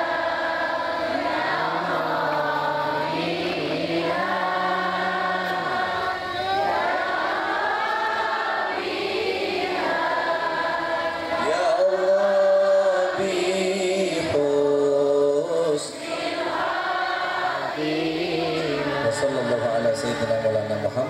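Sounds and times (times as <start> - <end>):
man chanting a prayer: 17.8 - 21.0.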